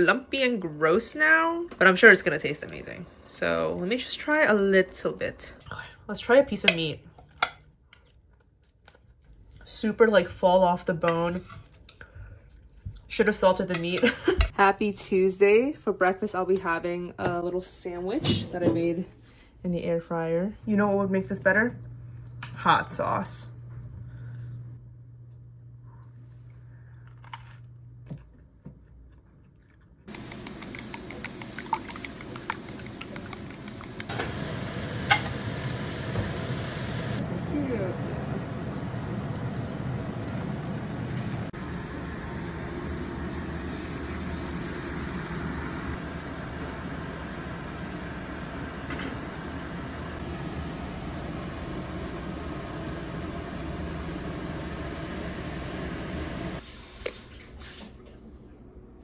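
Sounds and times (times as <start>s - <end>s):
food sizzling in frying pan: 33.7s - 46.0s.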